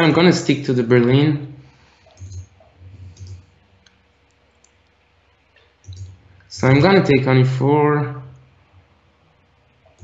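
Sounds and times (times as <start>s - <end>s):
computer mouse clicks: 2.1s - 5.0s, 5.6s - 6.2s.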